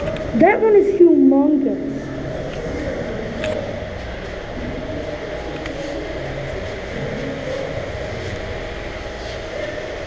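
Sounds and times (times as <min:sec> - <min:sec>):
distant voices: 0:00.0 - 0:10.0
low rumble of indoor hall: 0:00.0 - 0:10.0.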